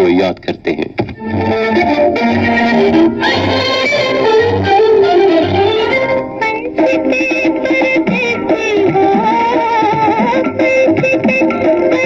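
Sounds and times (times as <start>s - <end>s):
film song on radio speaker: 0.0s - 12.0s.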